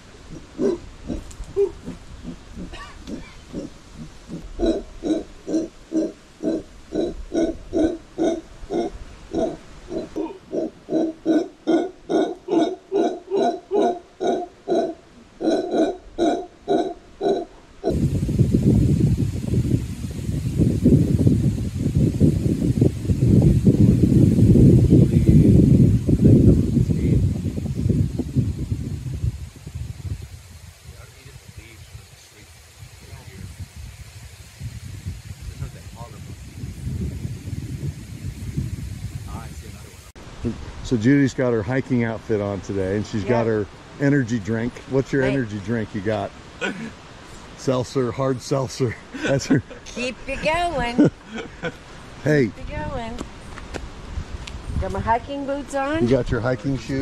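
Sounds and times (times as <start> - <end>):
dense rough low monkey roar: 0.0 - 29.0, 51.1 - 51.9
monkeys grunting calls: 0.3 - 18.0.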